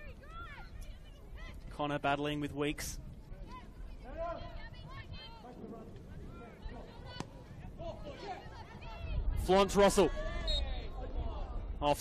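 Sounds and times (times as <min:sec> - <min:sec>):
players shouting: 0:03.4 - 0:11.6.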